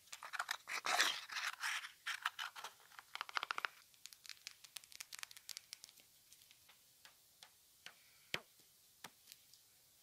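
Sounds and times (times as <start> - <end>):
small objects clicking and crackling: 0.1 - 6.8.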